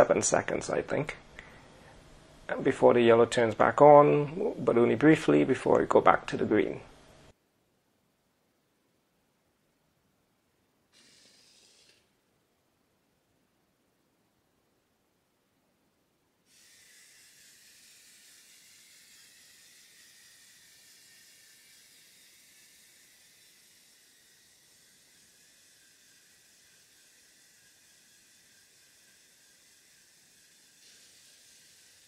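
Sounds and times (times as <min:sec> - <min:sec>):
faint steady hiss: 0:00.0 - 0:32.0.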